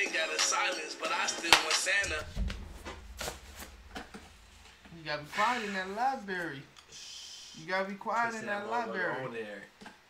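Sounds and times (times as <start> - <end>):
low bump: 2.0 - 6.3.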